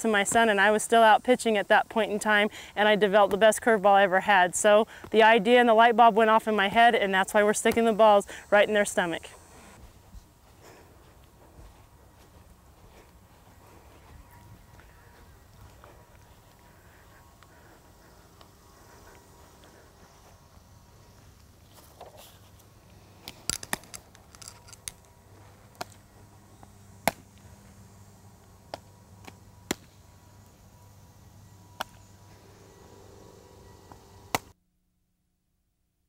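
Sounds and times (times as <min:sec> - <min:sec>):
faint steady hum: 0:00.0 - 0:36.0
softball smacking into gloves: 0:27.0 - 0:27.3.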